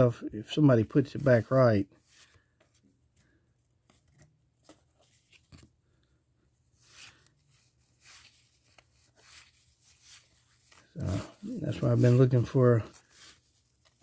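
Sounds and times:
cardboard cards rustling and clicking: 0:02.0 - 0:14.0.

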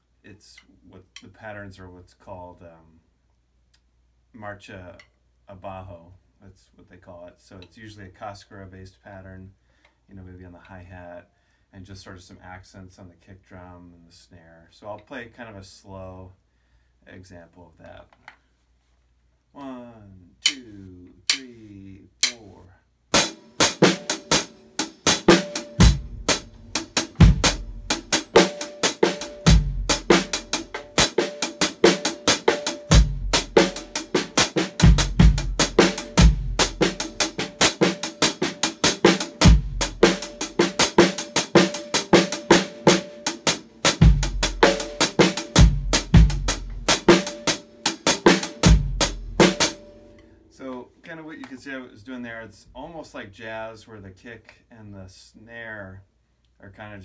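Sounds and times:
stick strokes on drum shell: 0:20.4 - 0:22.6
snare drum accents: 0:22.2 - 0:22.4, 0:23.1 - 0:49.9.

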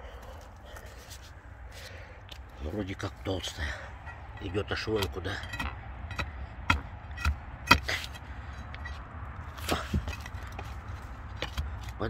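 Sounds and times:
shovel chopping into soil: 0:05.0 - 0:08.2, 0:09.5 - 0:10.7.

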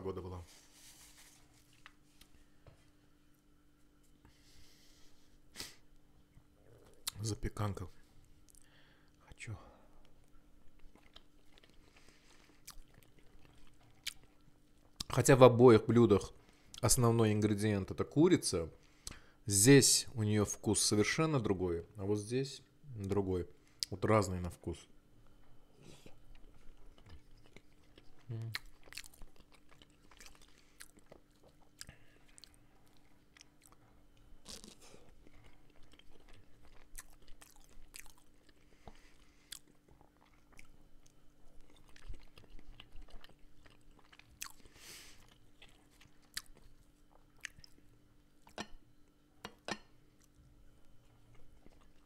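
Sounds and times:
close-miked chewing: 0:10.0 - 0:15.2, 0:25.9 - 0:48.7, 0:50.2 - 0:52.0.

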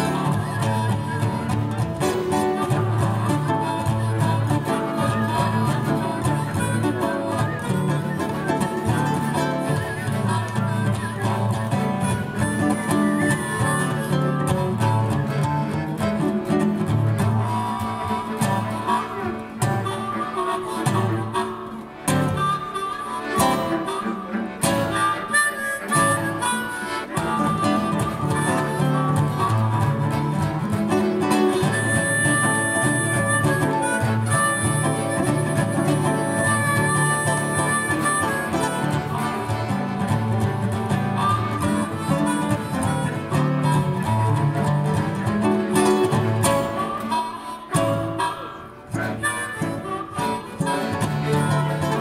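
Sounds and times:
accordion: 0:00.0 - 0:52.0
acoustic guitar: 0:00.0 - 0:52.0
harmonica melody: 0:00.0 - 0:52.0.

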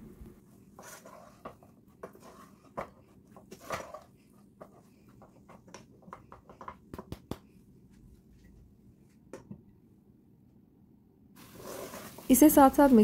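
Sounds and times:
wooden spatula scraping a pot: 0:00.5 - 0:06.6, 0:11.4 - 0:13.0.

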